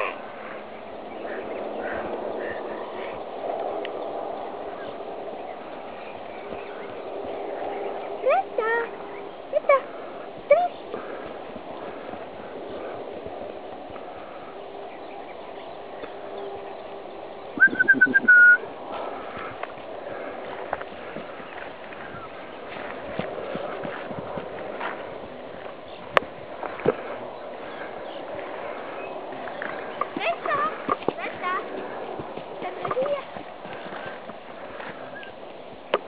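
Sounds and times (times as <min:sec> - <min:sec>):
outdoor background noise: 0:00.0 - 0:36.0.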